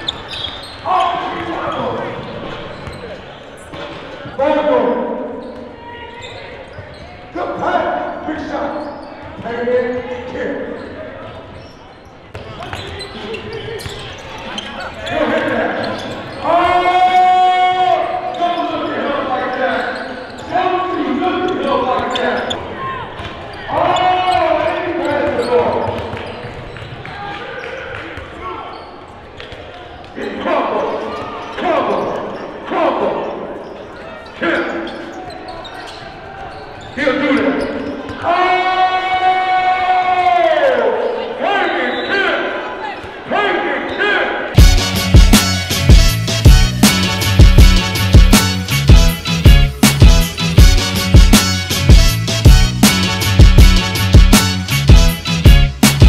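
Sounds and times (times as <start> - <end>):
people calling out in a gym: 4.3 - 9.3, 9.9 - 44.6.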